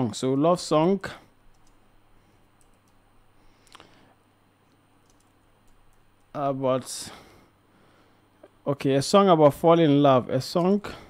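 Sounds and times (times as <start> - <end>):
keyboard keystrokes: 5.0 - 6.3.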